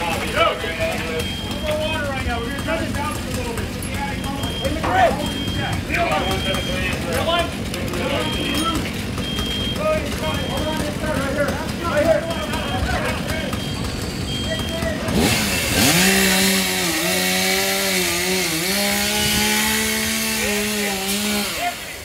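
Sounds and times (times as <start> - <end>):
chainsaw revving: 0.0 - 22.0.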